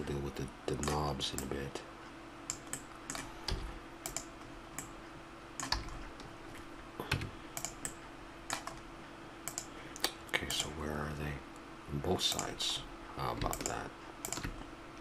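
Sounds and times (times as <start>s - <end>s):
faint steady hum: 0.0s - 15.0s
keyboard and mouse clicking: 0.8s - 1.6s, 2.5s - 4.9s, 5.6s - 6.0s, 7.1s - 8.8s, 9.4s - 10.8s, 13.3s - 14.7s.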